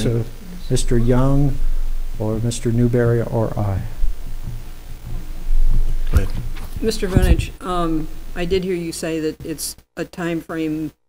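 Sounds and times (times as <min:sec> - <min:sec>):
dull low thumps on microphone: 0:00.0 - 0:08.6
low hum: 0:00.0 - 0:08.7.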